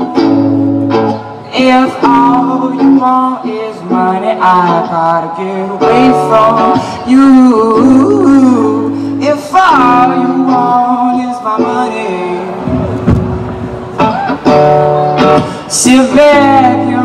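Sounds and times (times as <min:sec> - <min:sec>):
electric guitar strumming chords: 0:00.0 - 0:17.0
man singing into microphone: 0:01.4 - 0:12.7, 0:15.2 - 0:17.0.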